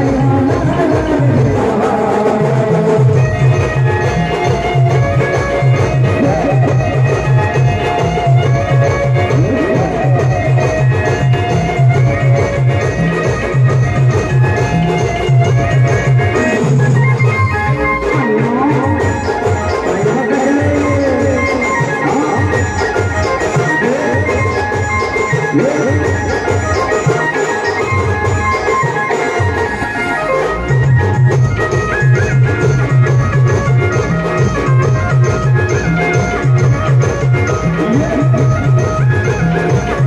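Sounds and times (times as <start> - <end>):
drums: 0.0 - 40.0
organ-voiced keyboard: 0.0 - 40.0.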